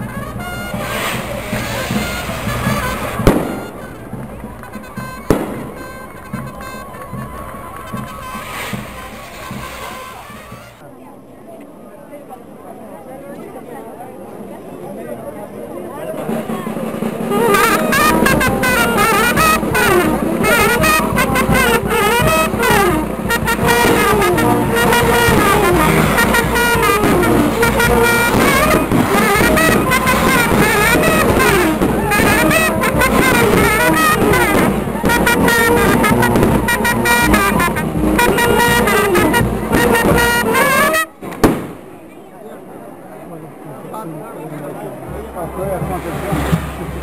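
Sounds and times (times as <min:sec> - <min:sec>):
brass band playing a melody: 0:00.0 - 0:10.8, 0:16.2 - 0:41.8, 0:45.0 - 0:47.0
music: 0:00.0 - 0:10.8, 0:16.2 - 0:41.2, 0:45.0 - 0:47.0
voices: 0:00.0 - 0:47.0
loud firecracker bangs: 0:00.1 - 0:10.8, 0:17.3 - 0:42.0.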